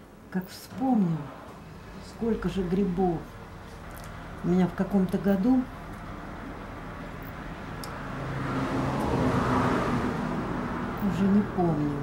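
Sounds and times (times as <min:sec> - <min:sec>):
vehicle passing by: 0:05.5 - 0:12.0.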